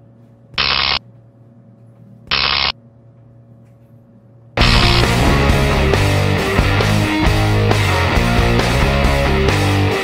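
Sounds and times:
low electrical hum: 0.0s - 6.8s
short electric buzzes: 0.6s - 1.0s, 2.3s - 2.8s.

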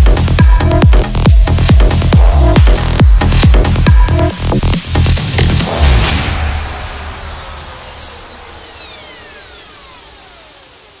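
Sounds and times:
electronic dance music: 0.0s - 11.0s
falling noise sweep: 5.6s - 11.0s
tones gliding downward: 6.0s - 11.0s.

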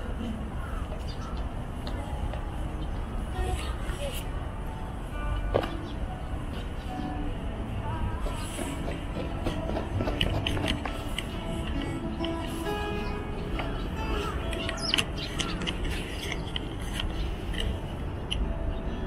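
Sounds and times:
indistinct voices: 0.0s - 18.6s
music playing: 0.0s - 19.0s.

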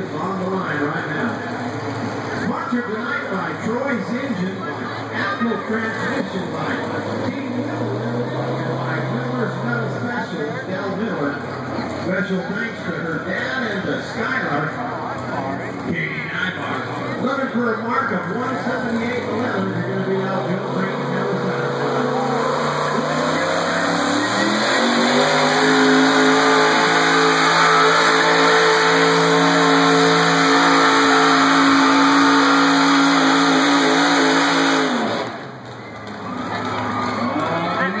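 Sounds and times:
truck engine revving under load: 5.9s - 10.2s, 18.4s - 37.6s.

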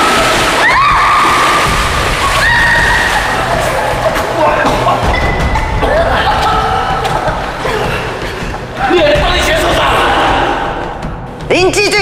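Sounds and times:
water splashing: 0.0s - 10.9s.

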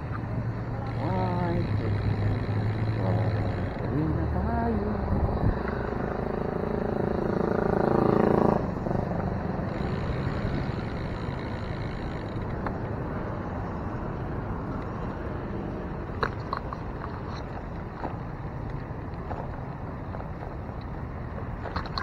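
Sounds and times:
vehicle engine droning: 0.0s - 22.0s.

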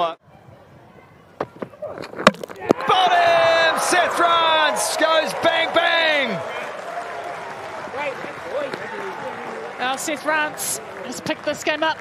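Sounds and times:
fielders shouting in celebration: 2.7s - 11.2s.

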